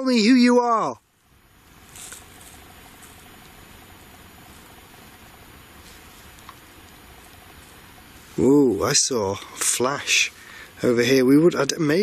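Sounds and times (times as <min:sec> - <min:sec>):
faint steady hiss: 0:00.0 - 0:12.0
soft rustle: 0:01.6 - 0:10.7.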